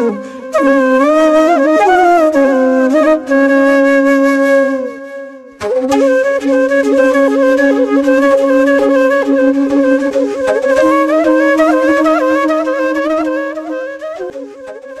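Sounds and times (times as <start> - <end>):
ornamented flute melody: 0.0 - 15.0.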